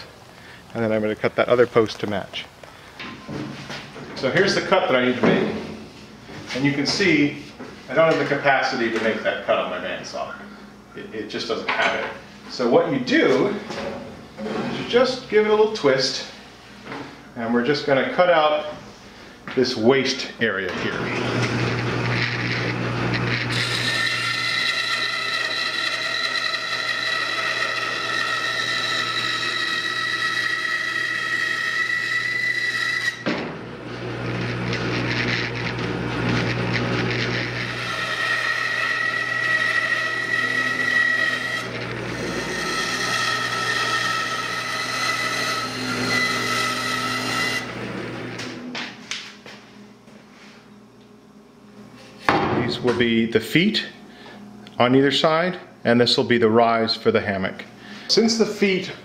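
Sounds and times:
band saw motor hum: 20.7 - 48.7
saw blade whining in wood: 20.8 - 33.2, 33.8 - 48.6.

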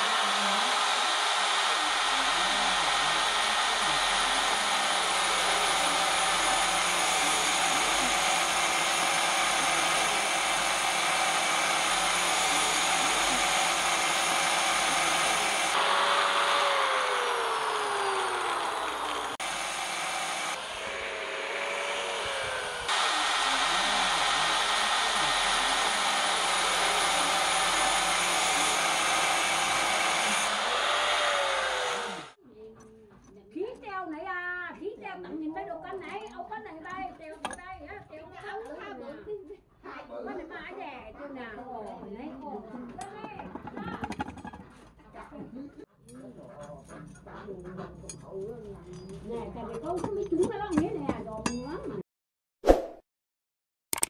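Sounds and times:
angle grinder cutting steel: 0.0 - 32.4.

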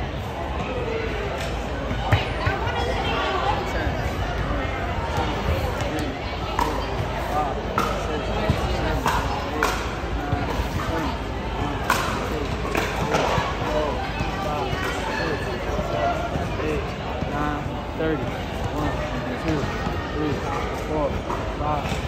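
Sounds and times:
people talking indistinctly: 0.0 - 22.0.

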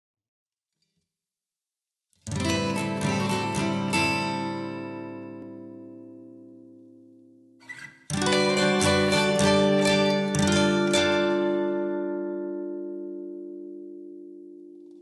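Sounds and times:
strummed guitar chords: 2.3 - 15.0.

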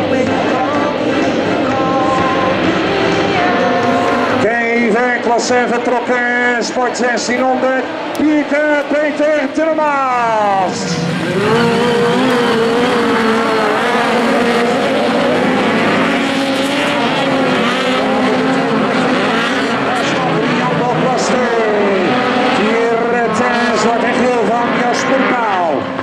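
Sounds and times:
racing car engines: 0.0 - 26.0.

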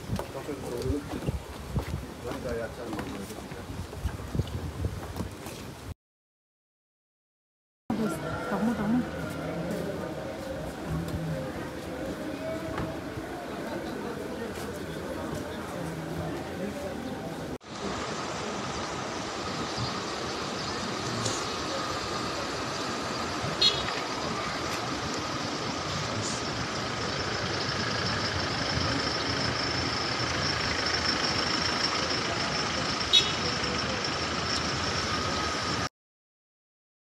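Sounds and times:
cars driving slowly past: 7.9 - 35.9.

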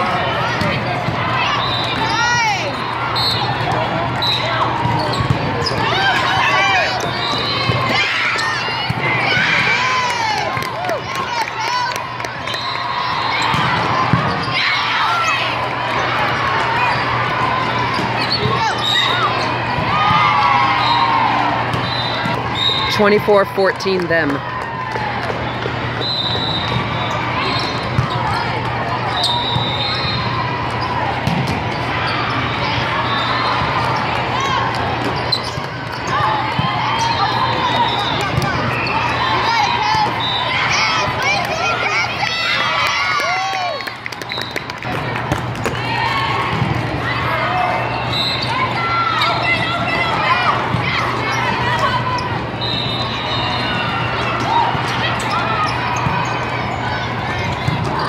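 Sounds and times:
people talking and calling out: 0.0 - 24.6.

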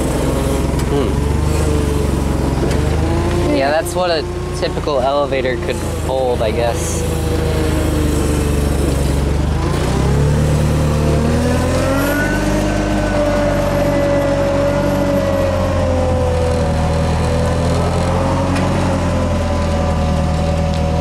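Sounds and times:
forklift engine revving: 0.0 - 21.0
hydraulic lift whine: 0.0 - 21.0.

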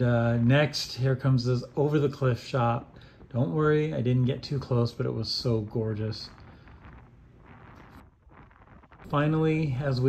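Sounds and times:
wind noise on microphone: 5.0 - 10.0
surf breaking against rock: 5.6 - 10.0.

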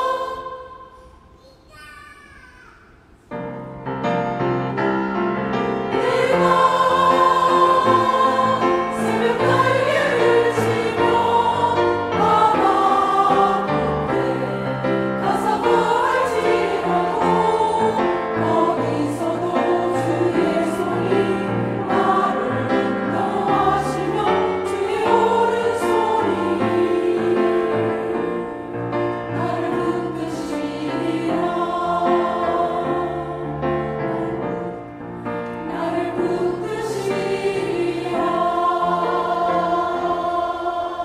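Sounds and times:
women's choir singing a hymn: 0.0 - 1.0, 4.4 - 41.0.

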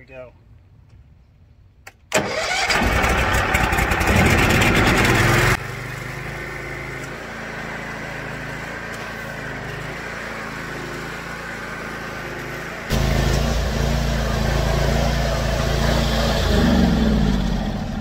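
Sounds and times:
pressure washer engine starting and running: 2.2 - 18.0.

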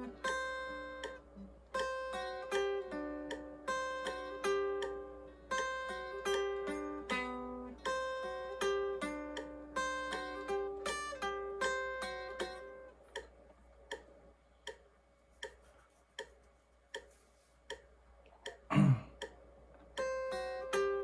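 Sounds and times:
metronome clicking: 0.0 - 21.0.

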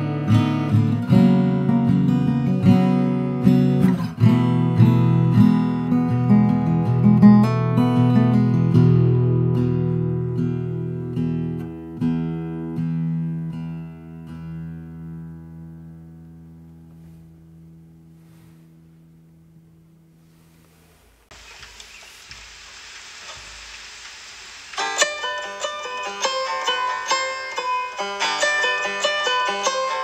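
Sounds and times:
banjo picked melody: 0.0 - 17.8, 24.8 - 30.0
acoustic guitar chord ringing: 0.0 - 20.5, 24.8 - 30.0
steady hiss: 16.7 - 30.0.

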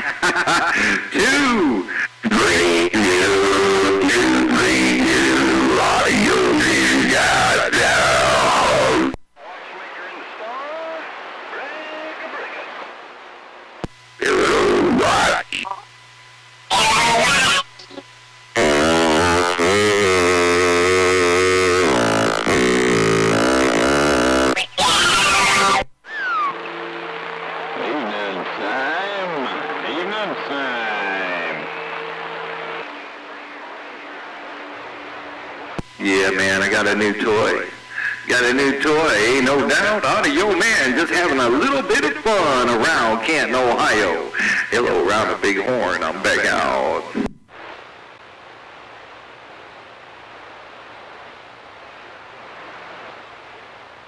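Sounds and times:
steady and sweeping radio tones: 0.0 - 13.3, 14.1 - 15.9, 21.0 - 48.0
distorted radio voices: 0.0 - 48.3
radio hiss: 0.0 - 54.0
radio static bursts: 0.0 - 54.0.

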